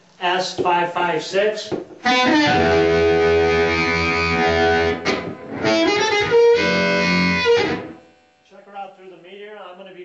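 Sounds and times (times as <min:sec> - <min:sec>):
harmonica chords: 0:02.0 - 0:08.4.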